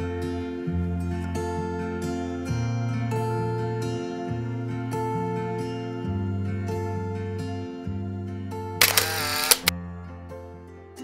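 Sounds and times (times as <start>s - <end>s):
camera shutter clicking: 8.8s - 9.7s.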